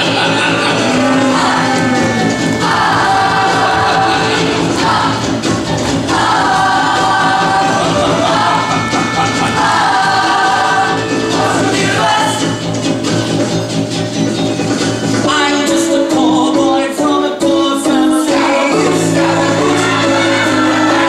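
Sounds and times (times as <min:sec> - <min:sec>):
ensemble singing in harmony: 0:00.0 - 0:13.4, 0:15.2 - 0:21.0
instrumental backing: 0:00.0 - 0:21.0.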